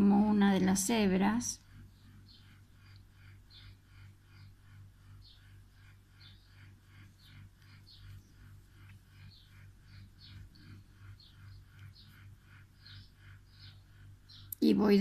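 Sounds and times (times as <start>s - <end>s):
low steady hum: 0.0s - 15.0s
bird chirping: 0.9s - 15.0s.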